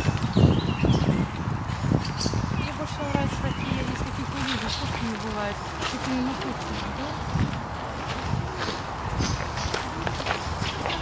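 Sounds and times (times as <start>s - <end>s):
high bird chirp: 0.0s - 5.7s
footsteps on dirt path: 2.9s - 11.0s.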